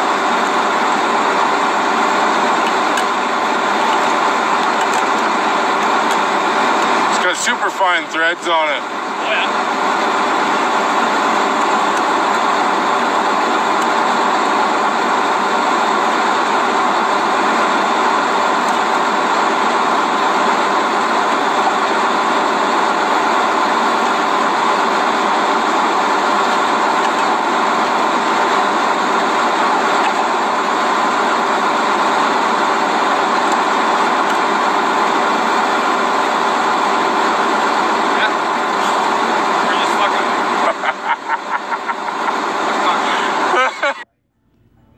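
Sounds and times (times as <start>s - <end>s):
heavy equipment engine droning: 0.0s - 44.9s.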